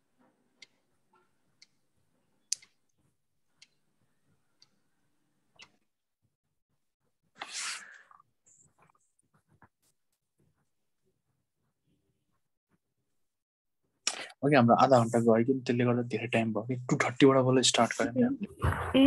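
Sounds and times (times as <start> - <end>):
faint clock ticking: 0.0 - 5.9.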